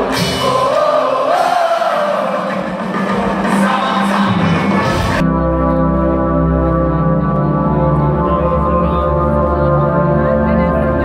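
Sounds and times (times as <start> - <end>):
organ-like keyboard chords: 2.1 - 11.0.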